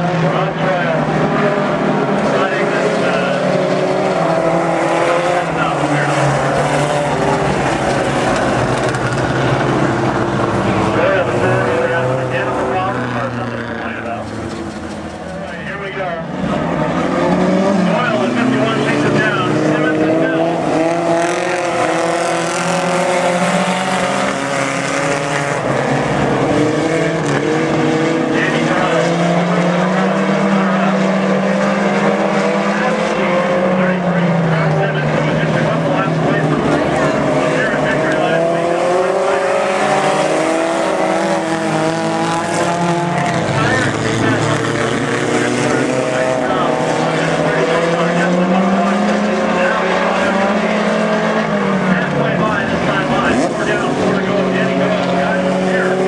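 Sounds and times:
race car engines running hard: 0:00.0 - 0:56.0.

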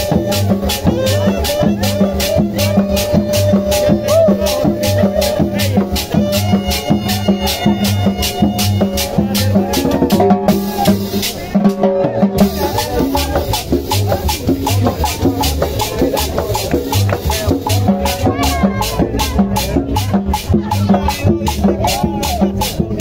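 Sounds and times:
saxophone melody: 0:00.0 - 0:19.4
congas drums and cymbals: 0:00.0 - 0:23.0
high percussion beat: 0:00.0 - 0:23.0
pulsing bass notes: 0:00.0 - 0:23.0.

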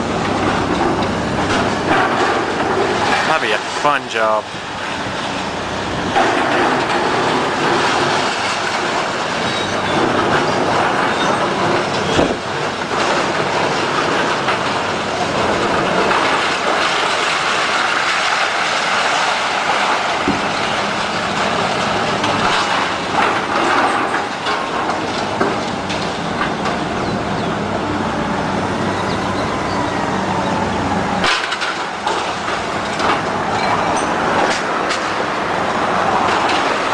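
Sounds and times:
falling debris: 0:00.0 - 0:27.8, 0:30.2 - 0:36.9
demolition machinery din: 0:00.0 - 0:36.9
sharp knocks and crashes: 0:00.2 - 0:04.3, 0:06.0 - 0:27.0, 0:31.2 - 0:36.9.

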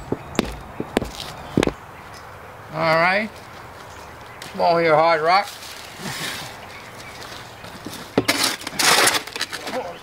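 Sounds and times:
shovel scraping dirt and stone: 0:07.9 - 0:09.9.

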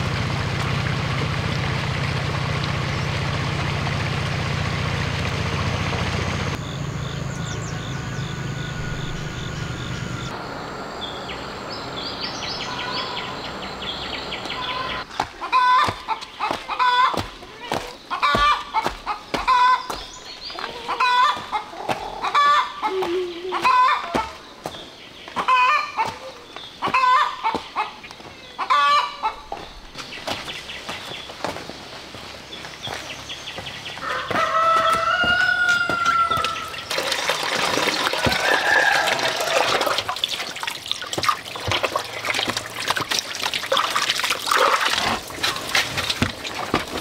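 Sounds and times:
chickens clucking: 0:14.5 - 0:30.5, 0:33.6 - 0:43.0
rooster crowing: 0:23.6 - 0:24.4, 0:34.0 - 0:36.9, 0:37.9 - 0:40.0
water splashing into metal basin: 0:36.5 - 0:47.0.

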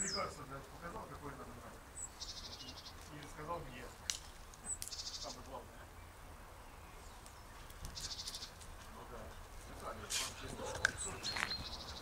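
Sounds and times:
quiet garden background: 0:00.0 - 0:12.0.

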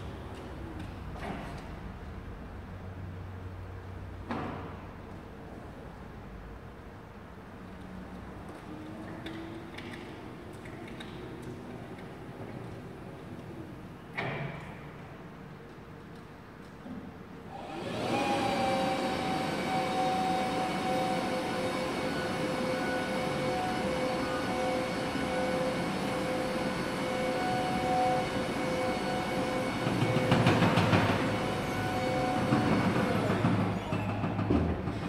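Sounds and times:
motor and hydraulic whine: 0:17.5 - 0:34.5.

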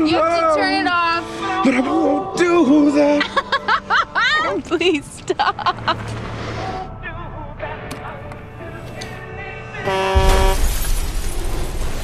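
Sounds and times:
song on car radio: 0:00.0 - 0:05.7, 0:06.3 - 0:10.7.

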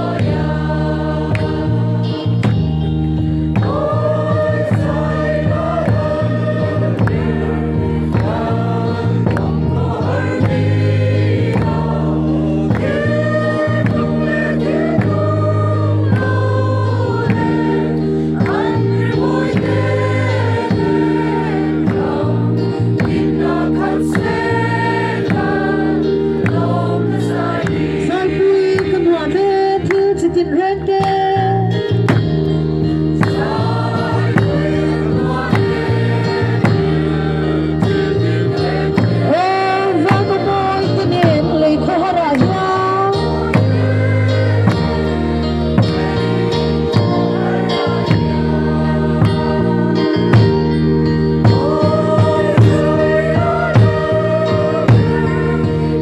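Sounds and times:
group singing a hymn: 0:00.0 - 0:31.1, 0:31.8 - 0:56.0.

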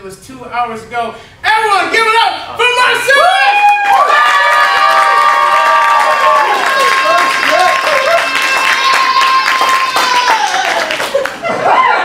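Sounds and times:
people whooping: 0:03.3 - 0:12.0
audience clapping and cheering: 0:03.4 - 0:12.0.

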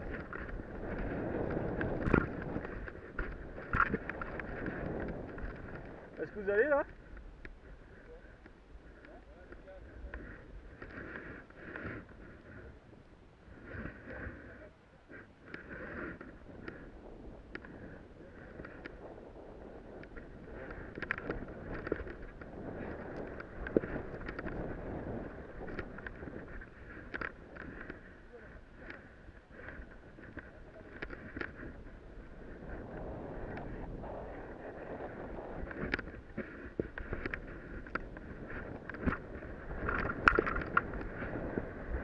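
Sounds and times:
skis sliding over powder snow: 0:00.0 - 0:08.4, 0:09.2 - 0:42.0
small ticks and knocks: 0:00.0 - 0:12.6, 0:17.4 - 0:19.0, 0:20.0 - 0:24.8, 0:25.6 - 0:28.1, 0:28.7 - 0:31.9, 0:35.6 - 0:42.0
wind rushing over microphone: 0:00.0 - 0:42.0.

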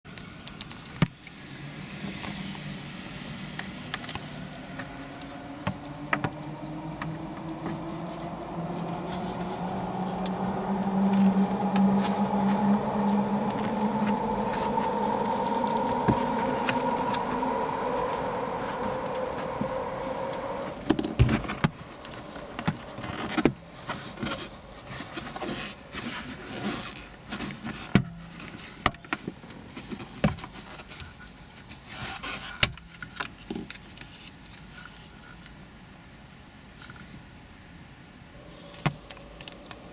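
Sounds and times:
motor drone: 0:01.1 - 0:26.6.

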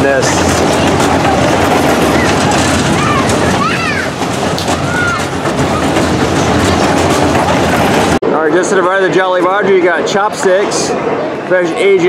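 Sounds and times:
crowd of voices: 0:00.0 - 0:12.0
ride rumbling: 0:00.0 - 0:12.0.

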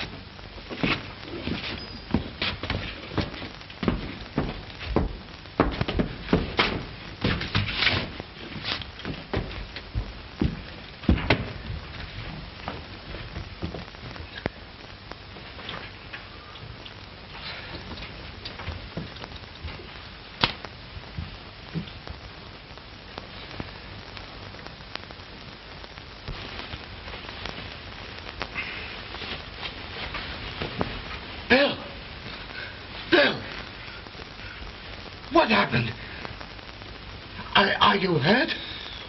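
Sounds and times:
film soundtrack hiss: 0:00.0 - 0:39.0
scattered clicks: 0:18.0 - 0:19.8
sharp pop: 0:20.4 - 0:20.6.

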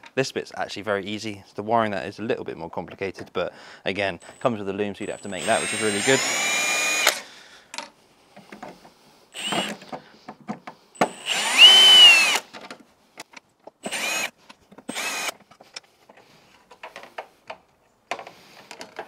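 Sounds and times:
cordless drill whining: 0:04.2 - 0:07.3, 0:09.4 - 0:09.9, 0:11.0 - 0:12.5, 0:13.8 - 0:15.4
small clicks of screws: 0:05.4 - 0:08.8.

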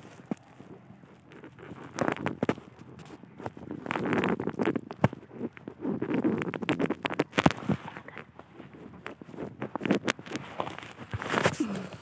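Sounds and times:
vine stems and soil rustling: 0:00.0 - 0:12.0.

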